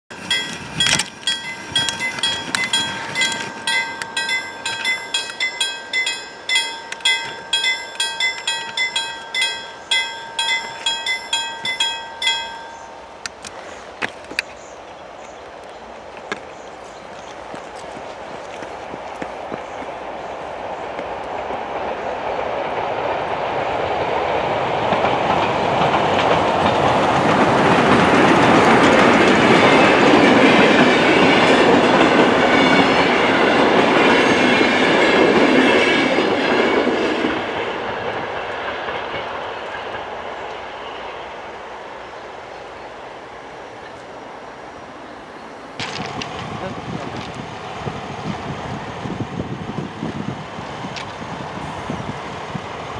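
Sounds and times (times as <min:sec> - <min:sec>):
train wheels clattering over rail joints: 0:00.1 - 0:14.5, 0:23.9 - 0:40.2.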